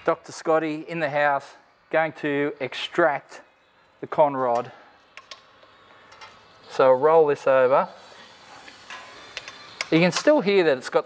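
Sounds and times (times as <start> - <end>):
cylinders making compression: 0.0 - 11.0
sharp clicks: 5.2 - 5.5.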